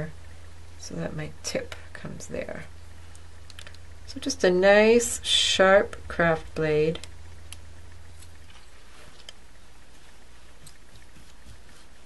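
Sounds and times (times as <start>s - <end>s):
low hum: 0.0s - 12.0s
craft knife cutting clay: 10.5s - 12.0s.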